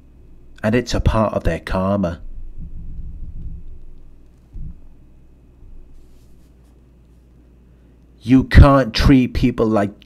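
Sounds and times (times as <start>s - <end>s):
low hum: 0.0s - 7.8s
soft rustling: 2.6s - 7.4s.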